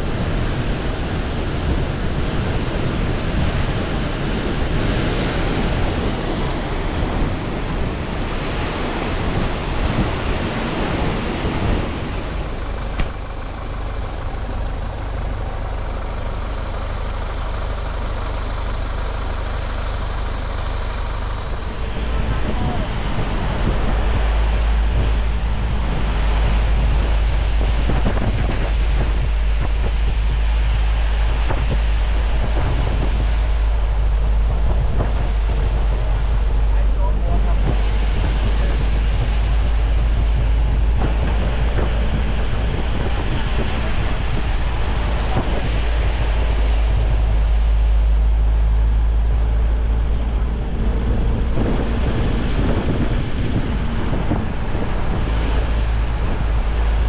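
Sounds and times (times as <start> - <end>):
road travel noise: 0.0 - 57.0
wind rumble on microphone: 0.0 - 57.0.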